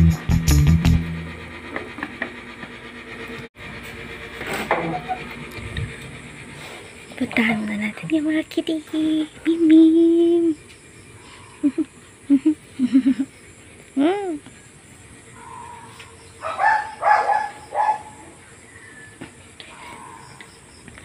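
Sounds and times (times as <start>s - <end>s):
animal calls: 11.1s - 13.4s, 15.2s - 20.7s.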